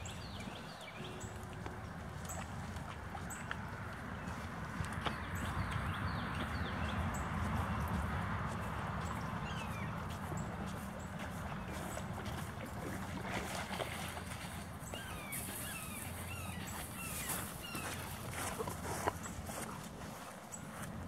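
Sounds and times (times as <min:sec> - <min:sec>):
outdoor background noise: 0:00.0 - 0:21.0.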